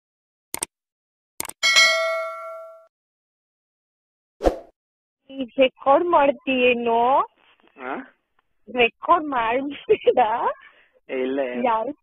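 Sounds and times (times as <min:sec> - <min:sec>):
bell-like notification ding: 0:01.6 - 0:02.9.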